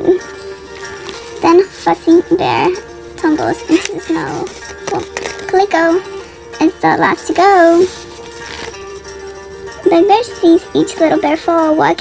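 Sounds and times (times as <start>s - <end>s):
soft background music: 0.0s - 12.0s
book page turning: 0.6s - 2.0s, 3.3s - 5.8s, 7.3s - 9.0s.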